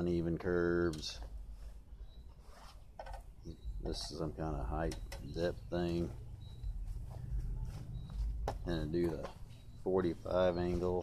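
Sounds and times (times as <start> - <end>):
man speaking: 3.5 - 6.2, 8.6 - 11.0
faint low rumble: 3.5 - 10.8.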